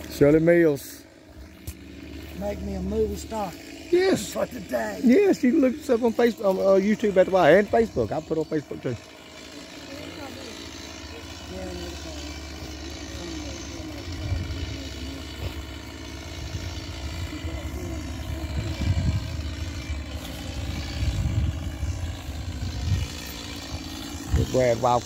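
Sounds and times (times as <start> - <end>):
chainsaw running: 0.0 - 25.0.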